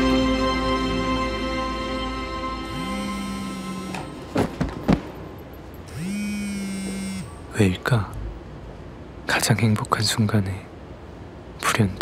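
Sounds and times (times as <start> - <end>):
smartphone vibrating on mat: 2.7 - 4.2, 5.9 - 7.3.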